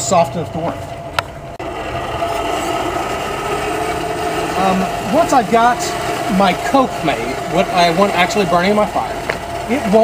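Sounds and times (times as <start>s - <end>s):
hand-cranked blower whirring: 0.7s - 10.0s.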